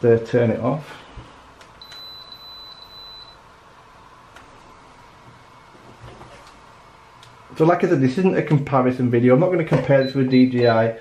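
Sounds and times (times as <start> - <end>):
drone beeping: 1.8 - 3.4.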